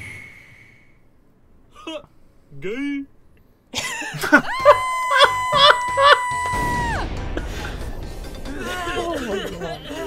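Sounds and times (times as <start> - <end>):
people laughing: 3.8 - 6.4, 7.4 - 10.0
cartoon high-pitched scream: 4.5 - 7.0.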